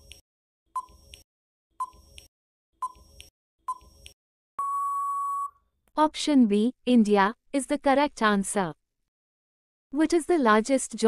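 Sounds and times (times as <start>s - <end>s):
electronic timer beep: 1.8s - 2.2s, 2.8s - 5.6s.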